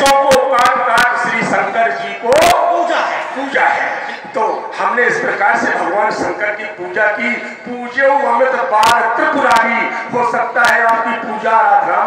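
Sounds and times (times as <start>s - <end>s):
man declaiming over loudspeaker: 0.0s - 12.0s.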